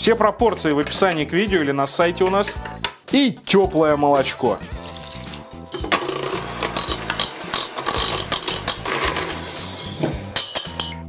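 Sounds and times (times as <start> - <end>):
electric hand mixer beating batter: 5.8 - 9.7.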